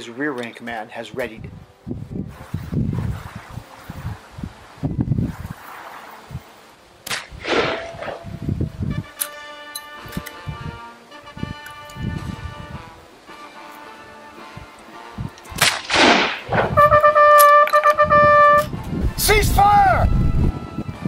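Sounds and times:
rifle shot with rolling echo: 7.0 - 8.3, 15.6 - 16.7
background music with held notes: 8.0 - 21.0.

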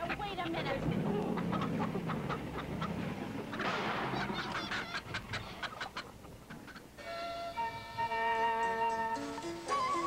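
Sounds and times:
chickens clucking and squawking: 0.0 - 9.1.

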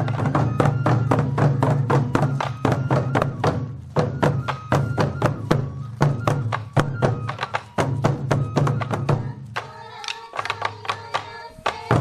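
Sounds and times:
taiko drums struck with sticks: 0.0 - 12.0.

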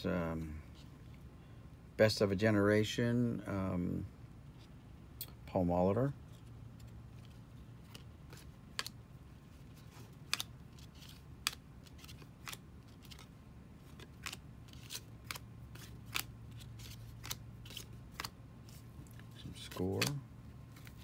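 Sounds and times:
cards flicking and snapping: 6.8 - 9.0, 9.9 - 21.0.

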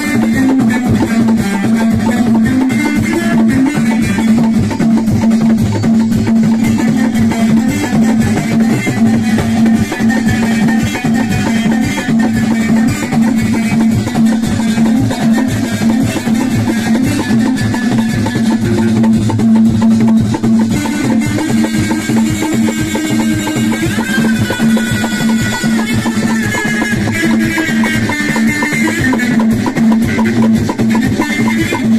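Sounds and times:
frame drum with jingles: 0.0 - 31.9
goblet drum: 0.0 - 31.9
plucked string instrument: 0.0 - 31.9.

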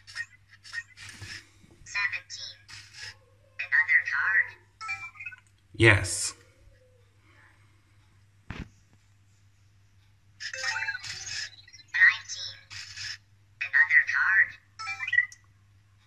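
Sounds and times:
robot electronic chirps: 10.4 - 13.2.

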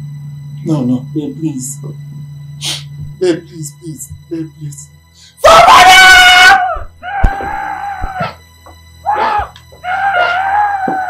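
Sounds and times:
background music: 0.0 - 11.0
person screaming: 5.4 - 8.4, 9.0 - 11.0
wavering wailing cries: 5.4 - 8.4, 9.0 - 11.0.

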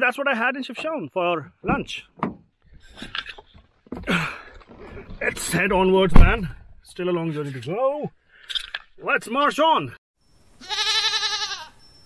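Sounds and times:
goat bleating: 10.6 - 11.8.

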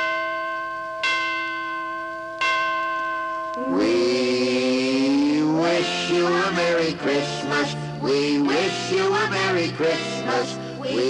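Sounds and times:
bell-like chime ringing: 0.0 - 4.5
person singing: 3.6 - 11.0.

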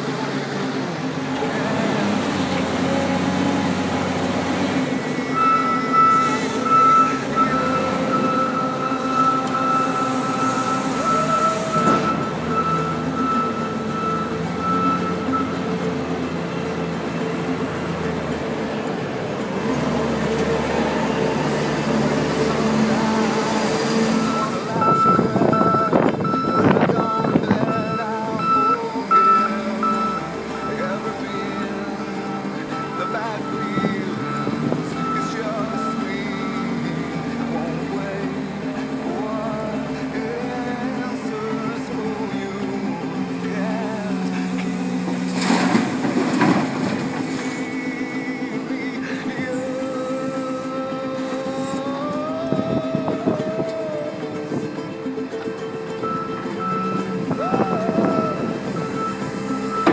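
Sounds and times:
diesel engine running: 0.0 - 59.9
reversing alarm beeping: 5.0 - 15.9, 24.0 - 37.1, 56.0 - 59.9.

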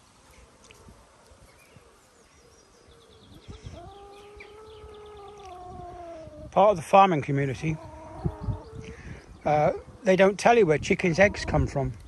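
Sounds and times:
hens chirping and ticking: 0.0 - 12.0.

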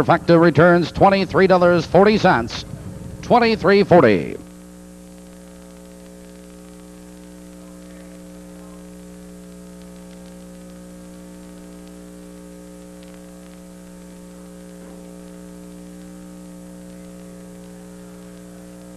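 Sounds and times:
electrical mains hum: 0.0 - 18.9
static hiss: 0.0 - 18.9.

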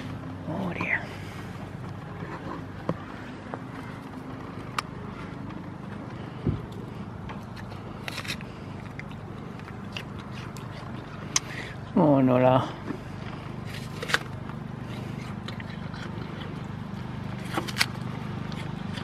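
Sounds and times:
goat crunching an apple: 0.0 - 19.0.

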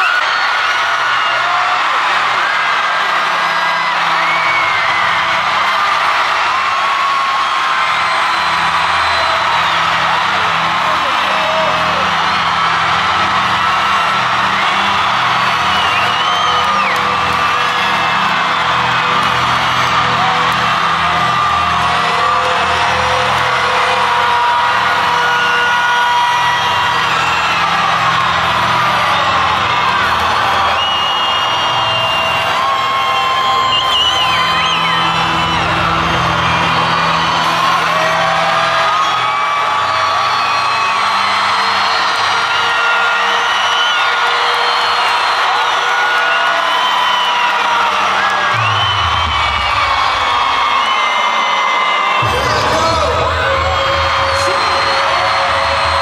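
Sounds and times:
crowd screaming and cheering: 0.0 - 56.0
loud music over sound system: 0.0 - 56.0.

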